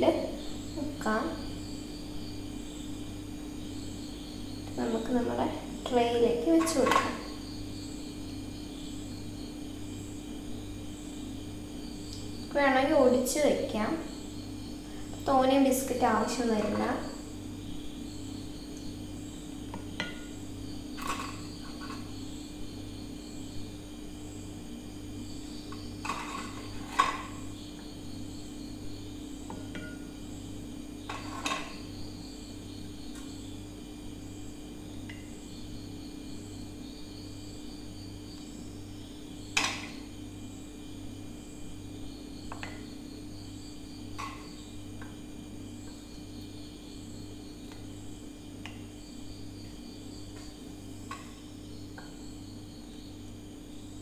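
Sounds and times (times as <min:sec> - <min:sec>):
steady low hum: 0:00.0 - 0:54.0
clinks against glassware: 0:29.5 - 0:30.1.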